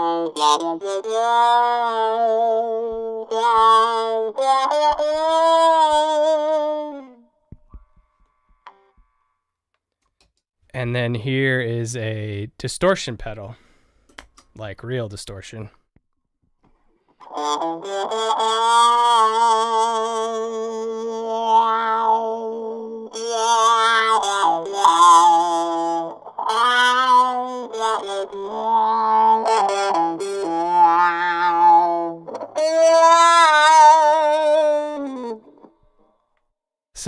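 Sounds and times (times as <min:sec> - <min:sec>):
distorted guitar through talkbox: 0:17.3 - 0:35.4.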